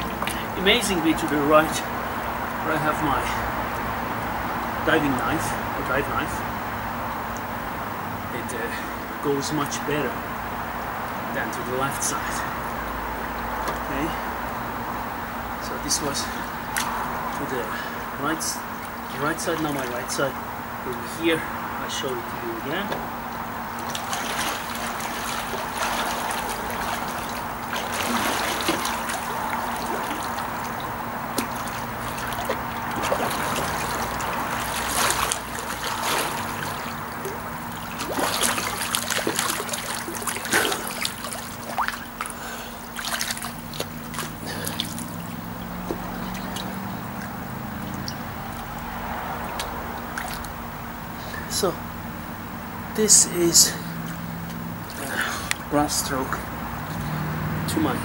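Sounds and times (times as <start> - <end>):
pool water sloshing and lapping: 0.0 - 51.9, 53.0 - 58.0
swimming stroke splashes: 16.2 - 21.2, 22.1 - 50.6.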